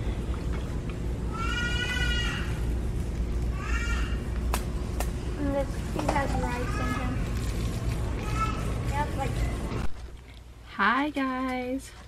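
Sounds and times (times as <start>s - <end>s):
low background rumble: 0.0s - 11.9s.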